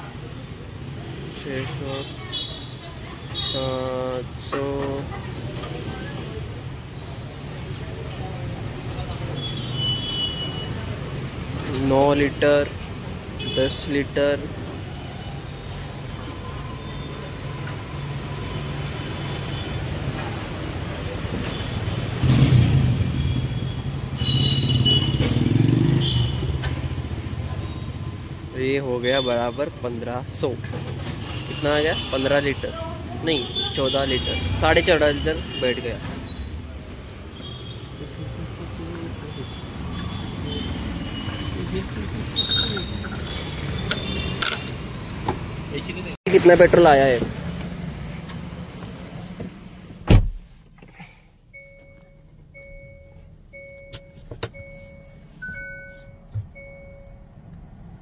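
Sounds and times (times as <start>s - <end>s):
vehicle engine: 15.7s - 28.8s, 37.9s - 50.0s.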